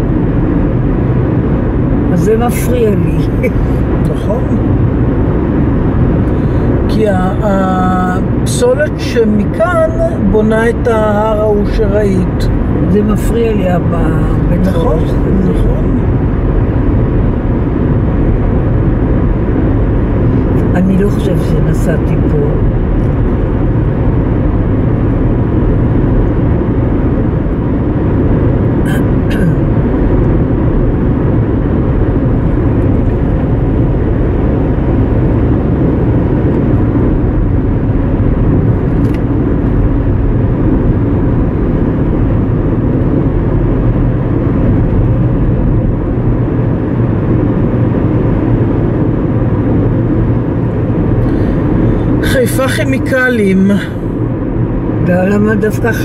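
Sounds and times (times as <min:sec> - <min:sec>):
car cabin tyre and engine rumble: 0:00.0 - 0:56.0.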